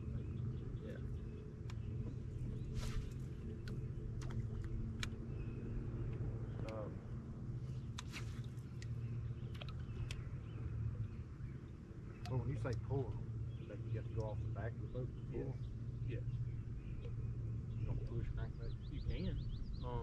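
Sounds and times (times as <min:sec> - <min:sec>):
boat motor humming: 0:00.0 - 0:20.0.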